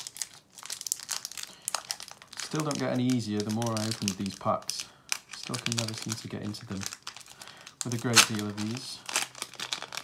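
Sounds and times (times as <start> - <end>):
foil wrapper crinkling: 0.0 - 10.0.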